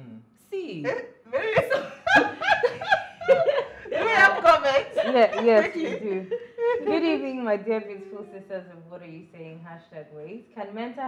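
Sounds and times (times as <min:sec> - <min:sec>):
women laughing: 0:00.9 - 0:08.4.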